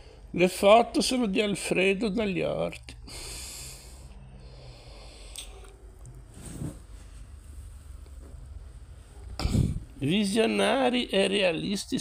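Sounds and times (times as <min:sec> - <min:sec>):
person breathing out: 0:03.0 - 0:05.7, 0:09.4 - 0:09.9.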